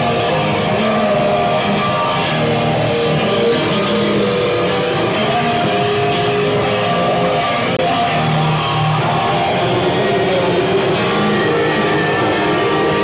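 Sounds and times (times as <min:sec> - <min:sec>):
distorted bass guitar noise: 0:00.0 - 0:13.0.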